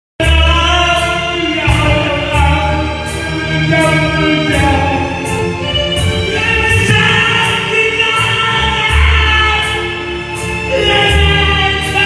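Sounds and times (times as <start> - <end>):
man singing into a microphone: 0.2 - 5.4, 6.2 - 12.0
backing track with steady beat: 0.2 - 12.0.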